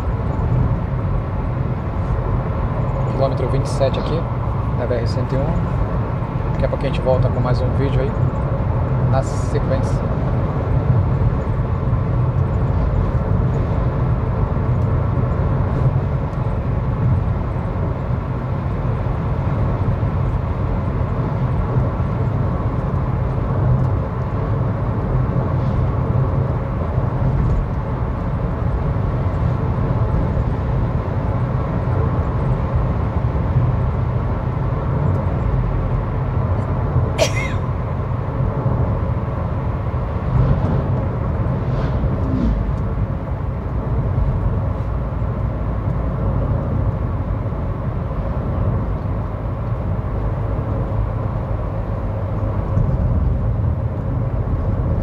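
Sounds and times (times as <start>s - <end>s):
car road noise rumble: 0.0s - 55.0s.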